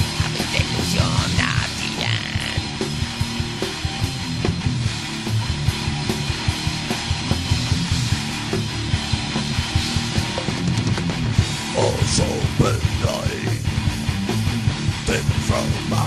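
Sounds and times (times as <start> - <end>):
bass guitar: 0.0 - 16.0
distorted electric guitars: 0.0 - 16.0
fast dense drumming: 0.0 - 16.0.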